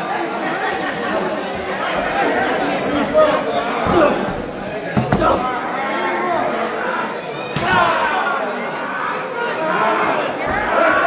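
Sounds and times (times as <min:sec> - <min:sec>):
crowd chattering and calling out: 0:00.0 - 0:11.0.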